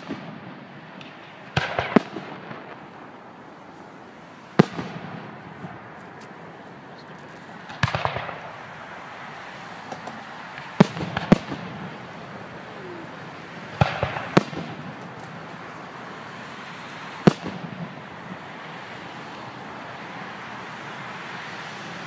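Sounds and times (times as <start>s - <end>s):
fireworks bangs: 0.0s - 19.3s
fireworks crackling: 0.0s - 22.0s.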